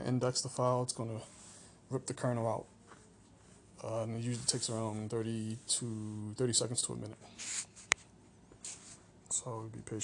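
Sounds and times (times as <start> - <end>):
soft short hisses: 7.3 - 8.0, 8.6 - 9.0.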